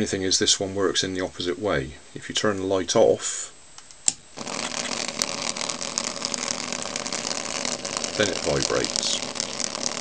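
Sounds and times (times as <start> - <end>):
small vibrating motor buzzing: 4.3 - 10.0.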